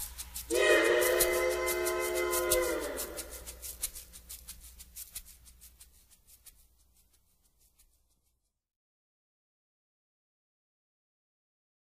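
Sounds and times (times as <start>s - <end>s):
fast shaker rhythm: 0.0s - 8.6s
train whistle: 0.5s - 3.6s.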